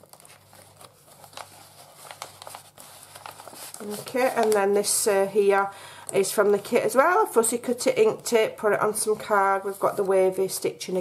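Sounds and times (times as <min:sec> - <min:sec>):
paper rustling and crinkling: 0:00.0 - 0:05.5.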